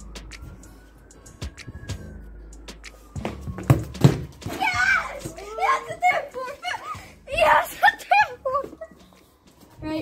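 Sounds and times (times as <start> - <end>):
boys calling out excitedly: 4.5 - 8.9.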